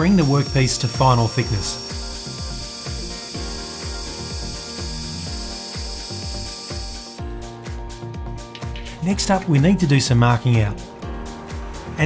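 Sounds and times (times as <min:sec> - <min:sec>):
lathe cutting hiss: 0:00.0 - 0:07.2.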